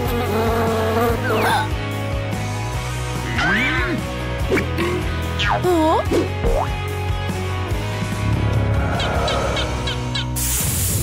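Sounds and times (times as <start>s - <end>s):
cartoon fly buzzing: 0.0s - 1.8s
background music: 0.0s - 11.0s.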